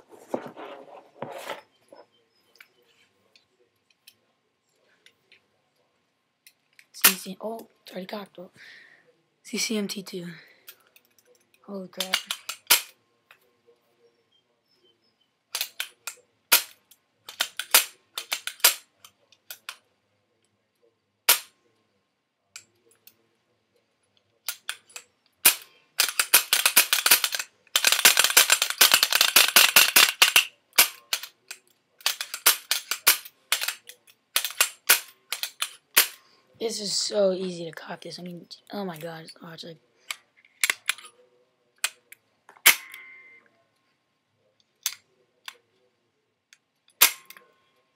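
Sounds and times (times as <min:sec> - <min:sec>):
packaging clicks and crackles: 0:24.5 - 0:36.2.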